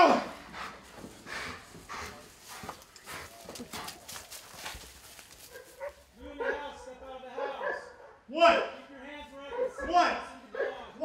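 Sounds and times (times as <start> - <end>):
man shouting: 0.0 - 0.4, 6.2 - 8.8
dog panting: 0.3 - 6.0.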